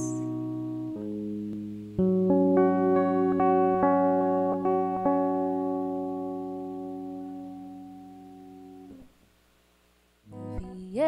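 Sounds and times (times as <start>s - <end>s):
electric guitar chord ringing: 0.0s - 9.1s.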